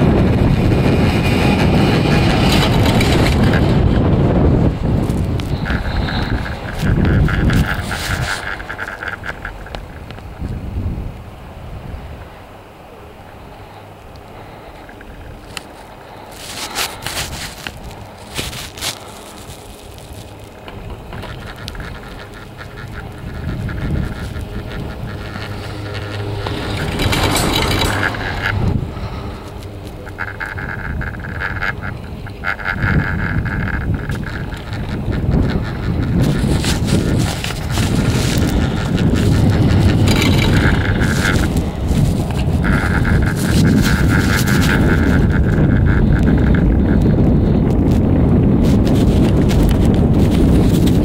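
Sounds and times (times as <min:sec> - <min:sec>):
steady high whine: 0:00.0 - 0:48.0
chairlift humming and ticking: 0:00.0 - 0:51.0
wind on microphone: 0:00.0 - 0:51.0
squeaky rattle: 0:00.4 - 0:04.0, 0:05.0 - 0:10.1, 0:14.6 - 0:47.6.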